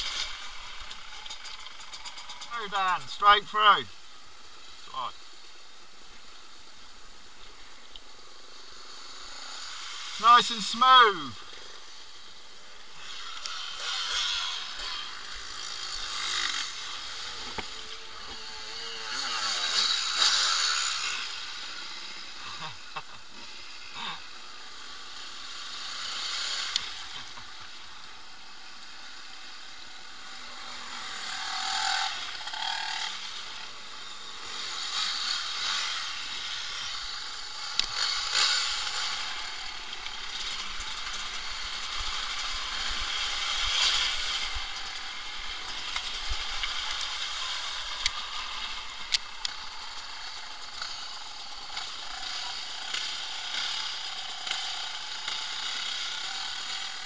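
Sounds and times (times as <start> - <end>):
dirt bike engines: 0.0 - 57.0.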